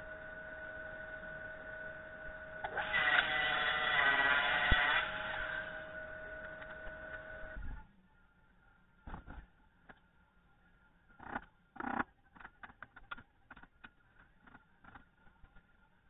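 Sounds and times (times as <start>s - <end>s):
table saw cutting: 2.6s - 7.5s.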